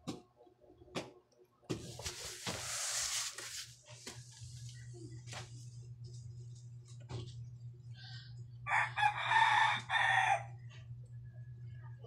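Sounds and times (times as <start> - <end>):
steady low hum: 0.1 - 12.0
rooster crowing: 8.6 - 10.6.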